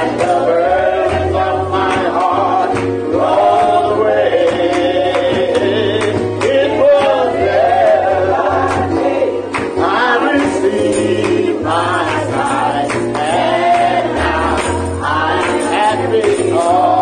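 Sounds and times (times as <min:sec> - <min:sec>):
gospel group singing with band: 0:00.0 - 0:17.0.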